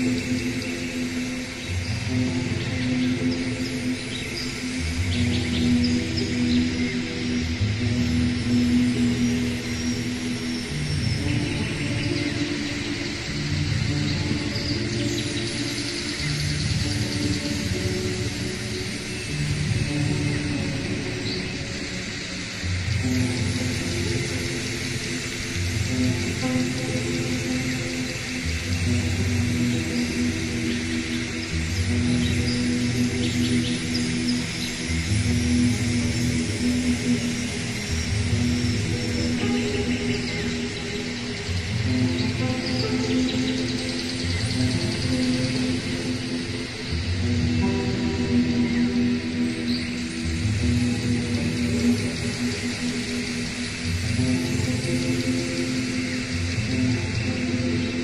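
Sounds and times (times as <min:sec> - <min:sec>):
slow ambient music: 0:00.0 - 0:58.0.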